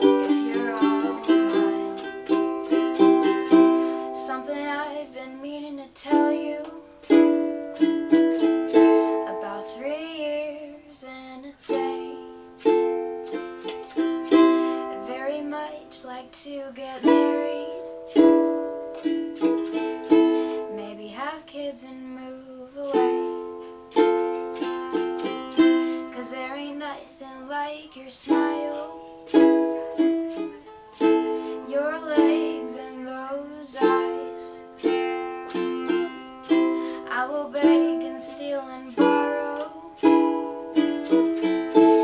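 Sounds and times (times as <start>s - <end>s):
ukulele chords strummed: 0.0s - 10.9s, 11.6s - 21.2s, 22.9s - 42.0s.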